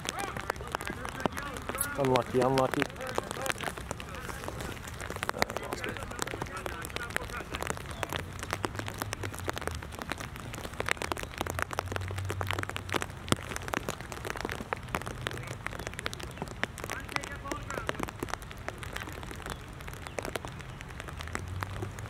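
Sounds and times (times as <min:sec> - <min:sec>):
raindrops tapping on plastic: 0:00.0 - 0:22.0.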